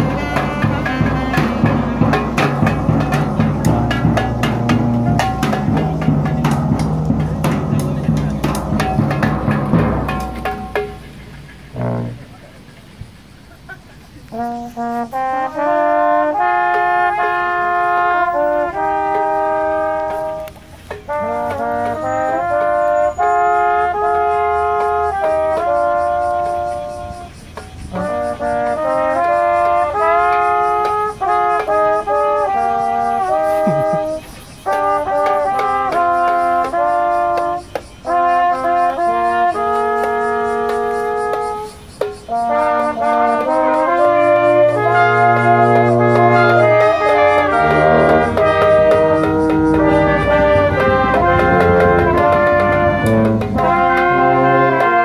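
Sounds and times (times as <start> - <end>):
hand drum: 0.0 - 12.4, 19.0 - 23.1, 33.1 - 55.0
brass band playing: 0.0 - 12.8, 14.3 - 55.0.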